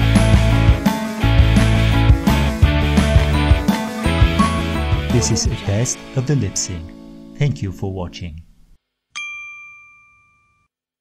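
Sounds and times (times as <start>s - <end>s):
bell-like ding: 9.2s - 10.7s.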